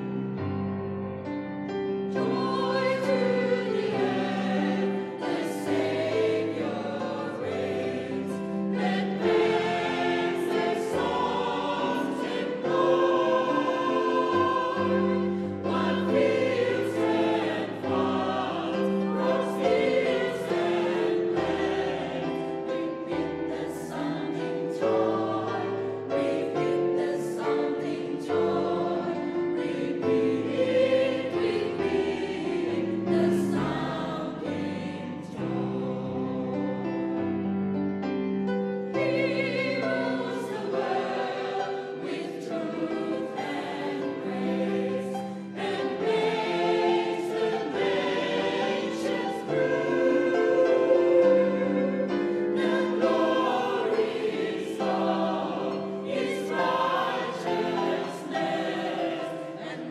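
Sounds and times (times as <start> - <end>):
mixed choir singing a carol: 0.0 - 59.9.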